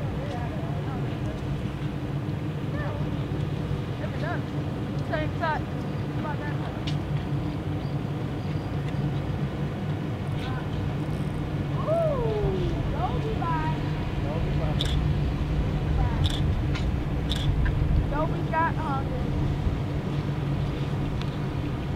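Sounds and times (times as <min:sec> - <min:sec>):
steady low drone: 0:00.0 - 0:21.9.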